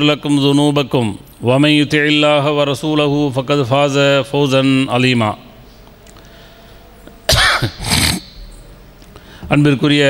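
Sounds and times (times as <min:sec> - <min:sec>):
man coughing: 0:07.3 - 0:08.3.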